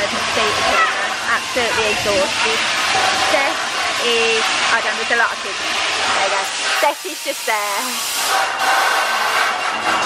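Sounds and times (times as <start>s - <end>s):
air blowers rushing: 0.0s - 10.0s.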